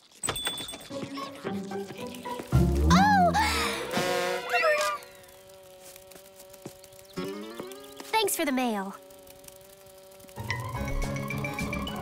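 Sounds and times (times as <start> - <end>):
cartoon bee wings buzzing: 0.9 - 12.0.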